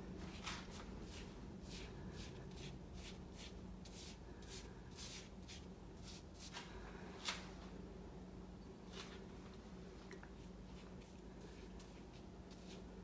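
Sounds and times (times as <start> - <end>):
ink brush swishing on paper: 0.2 - 6.6, 10.7 - 12.9.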